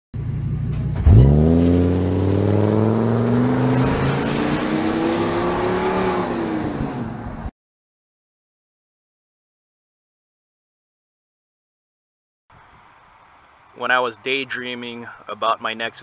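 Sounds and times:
van engine idling and accelerating: 0.2 - 7.4.

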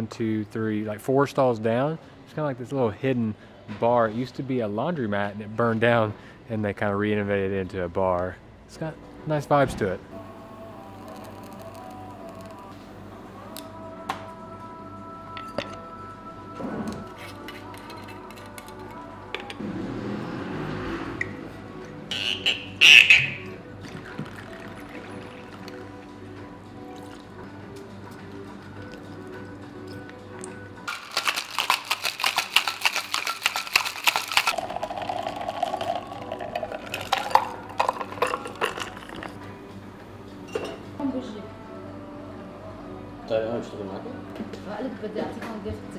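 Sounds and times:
background music: 0.0 - 45.9
drink being poured: 10.7 - 12.7, 23.0 - 26.0, 27.0 - 27.3, 30.9 - 39.5
cocktail shaker rattling with ice: 30.9 - 39.4.

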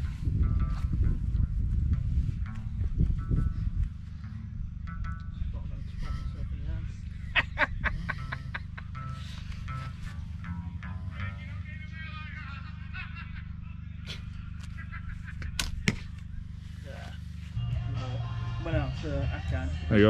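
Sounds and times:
steady low hum: 0.0 - 20.0
sharp crack: 15.4 - 16.3
music over pa: 17.5 - 20.0.

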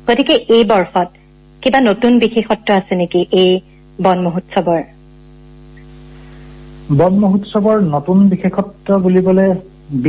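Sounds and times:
electrical mains hum: 0.0 - 10.0
faint hiss: 0.0 - 10.0.

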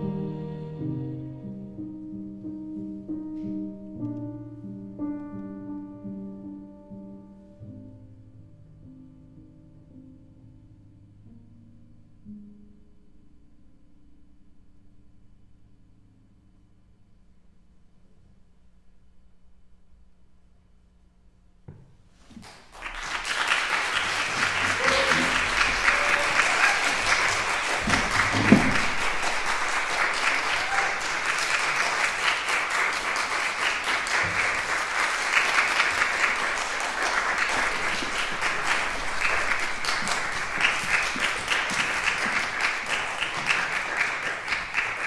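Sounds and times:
audience applauding: 22.4 - 45.0.

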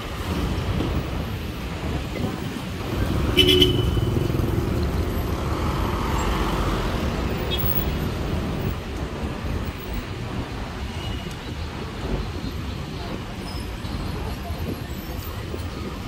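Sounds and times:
road traffic rumble: 0.0 - 16.0.

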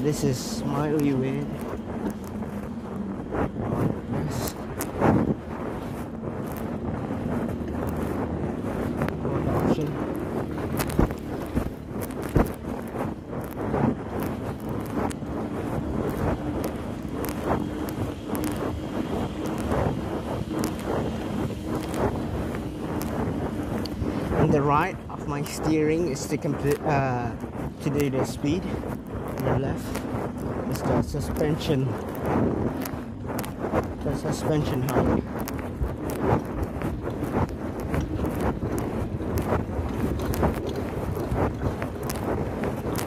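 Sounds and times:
wind buffeting microphone: 0.0 - 43.0
bike clicks and knocks: 8.8 - 27.0, 30.8 - 43.0.

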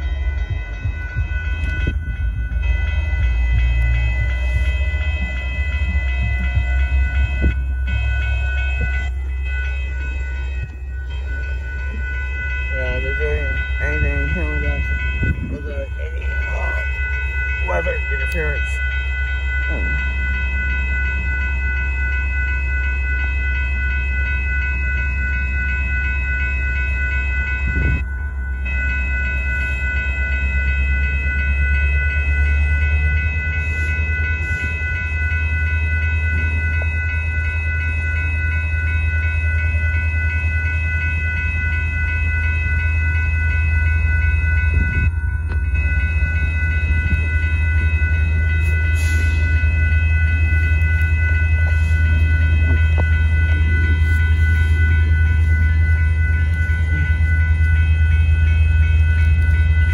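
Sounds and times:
diesel locomotives rumbling: 0.0 - 59.9
railroad crossing bell ringing: 0.0 - 59.9.

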